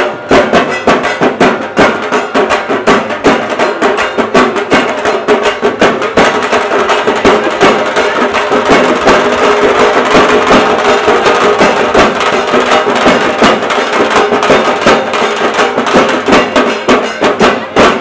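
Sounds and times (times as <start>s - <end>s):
dense crowd noise: 0.0s - 18.0s
drums beaten in fast rhythm: 0.0s - 18.0s.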